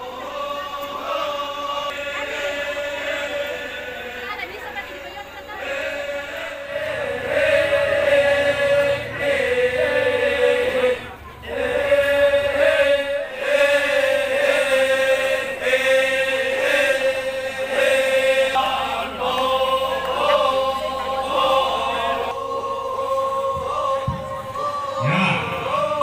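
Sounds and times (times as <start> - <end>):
voices chanting on a droning note: 0.0 - 26.0.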